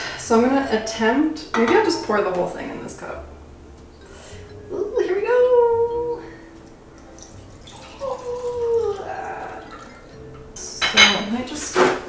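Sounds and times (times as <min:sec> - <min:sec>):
liquid trickling into a cup: 0:07.0 - 0:10.2.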